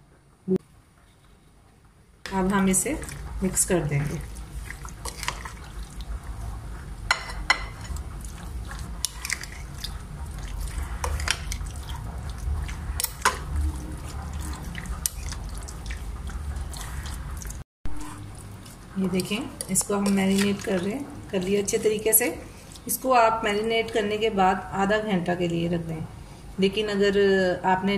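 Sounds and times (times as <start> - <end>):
wet squelching of marinade: 2.3 - 6.5, 7.8 - 24.1
spoon scraping glass bowl: 8.7 - 12.0.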